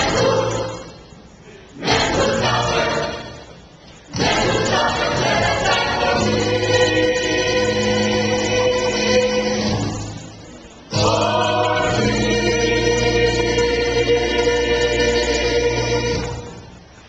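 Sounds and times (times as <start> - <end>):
choir singing gospel: 0.0 - 17.0.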